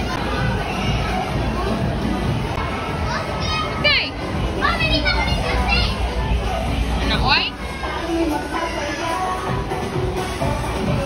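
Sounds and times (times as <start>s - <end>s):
children shouting and squealing: 2.5s - 7.0s.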